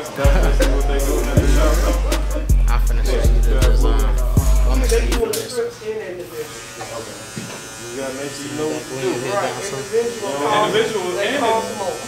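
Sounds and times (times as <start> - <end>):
electric hair clippers buzzing: 6.2 - 12.0.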